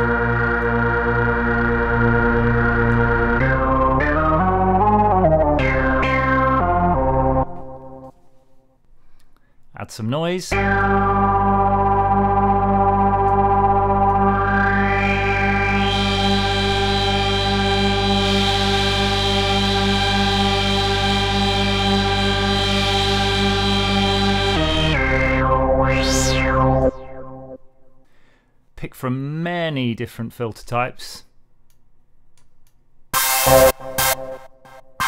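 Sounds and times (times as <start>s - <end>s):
synthesizer filter sweep: 0.0s - 8.1s, 10.5s - 28.0s, 33.2s - 35.0s
synthesizer note: 0.0s - 8.1s, 10.5s - 28.0s, 33.2s - 35.0s.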